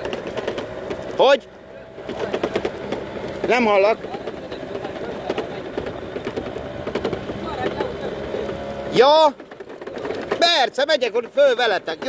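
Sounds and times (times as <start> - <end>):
vehicle engine running: 0.0 - 12.0
rattling clicks: 2.0 - 12.0.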